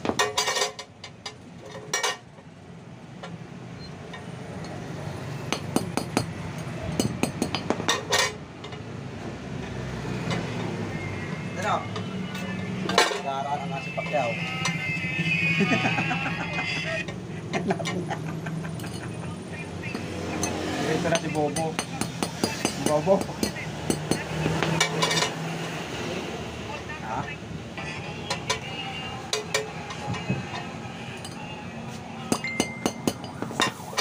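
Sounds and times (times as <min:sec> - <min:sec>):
voices: 0:10.2 - 0:34.0
hammer tapping metal disc: 0:32.3 - 0:33.8.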